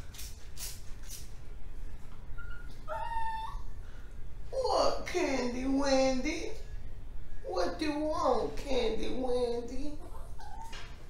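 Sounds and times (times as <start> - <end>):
spray bottle squirts: 0.0 - 1.3.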